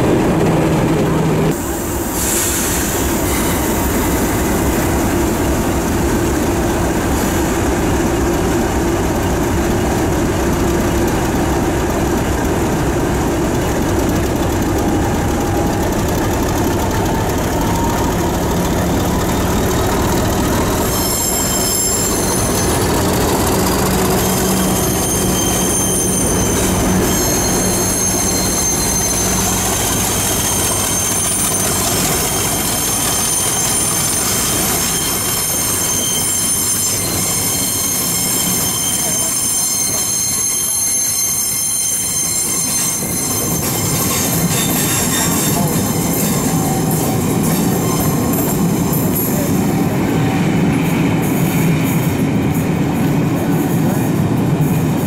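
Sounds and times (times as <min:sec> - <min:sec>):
locomotive engine humming: 0:00.0 - 0:41.4, 0:42.9 - 0:55.0
train wheels squealing: 0:01.0 - 0:55.0.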